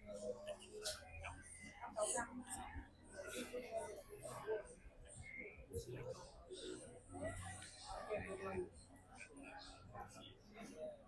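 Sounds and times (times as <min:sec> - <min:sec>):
quiet murmured speech: 0:00.0 - 0:11.0.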